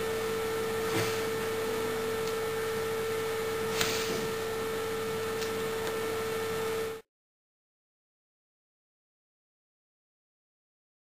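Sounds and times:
steady electrical hum: 0.0 - 7.1.

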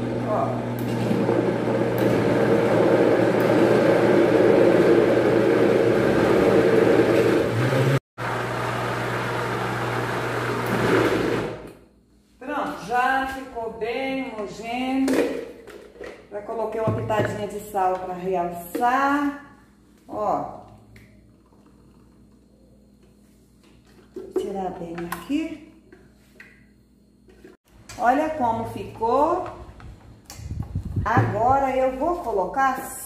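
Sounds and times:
electric blender running: 0.0 - 11.8
woman speaking: 12.4 - 15.2, 16.3 - 19.5, 20.1 - 20.7, 24.4 - 25.7, 28.0 - 29.6, 31.0 - 33.0.

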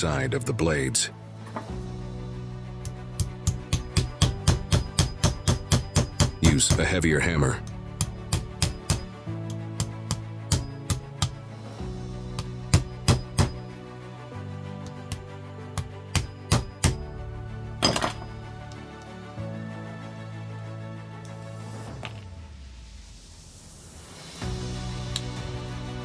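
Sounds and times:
background music: 0.0 - 26.0
hammer striking metal: 2.8 - 7.0, 7.9 - 9.2, 9.8 - 11.4, 12.4 - 13.7, 15.8 - 17.0, 17.8 - 18.4.

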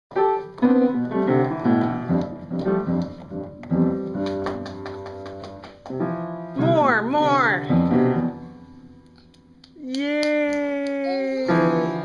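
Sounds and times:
upright piano notes: 0.1 - 9.6, 11.4 - 12.0.

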